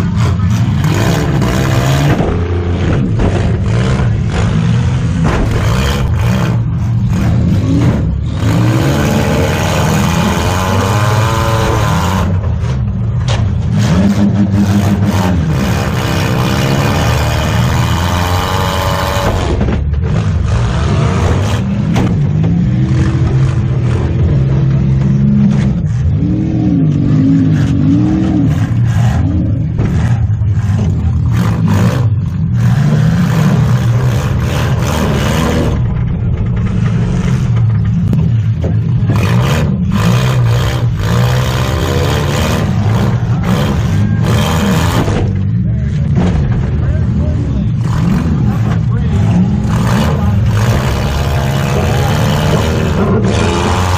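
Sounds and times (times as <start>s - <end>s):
car knocks and metal clatter: 0.0s - 8.3s, 11.7s - 14.6s, 18.7s - 20.5s, 21.1s - 26.1s, 28.6s - 33.1s, 33.8s - 41.1s, 42.6s - 49.0s
car engine revving: 0.0s - 53.9s.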